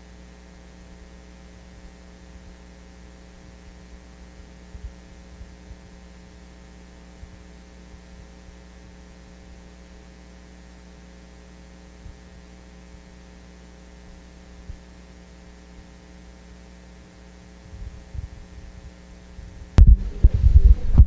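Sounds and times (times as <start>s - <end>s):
electrical mains hum: 0.0s - 21.0s
faint low thumps: 19.4s - 21.0s.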